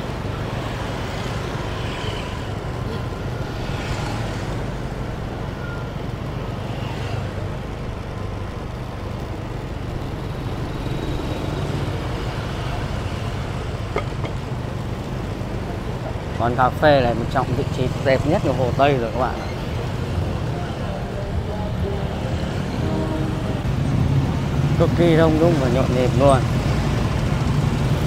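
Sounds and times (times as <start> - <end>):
motor scooter traffic: 0.0 - 28.0.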